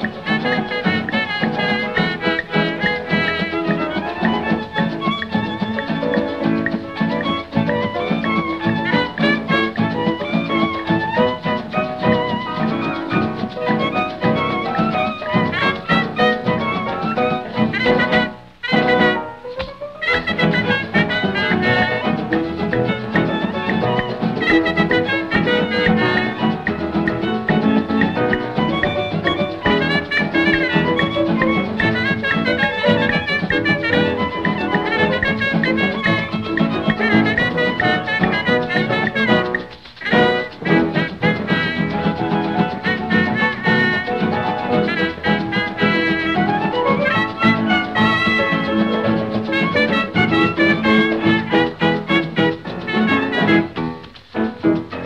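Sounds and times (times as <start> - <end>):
dance band playing: 0.0 - 55.0.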